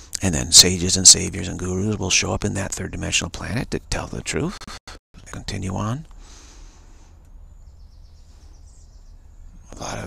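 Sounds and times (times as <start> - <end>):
low outdoor rumble: 0.0 - 10.0
small birds chirping: 0.0 - 10.0.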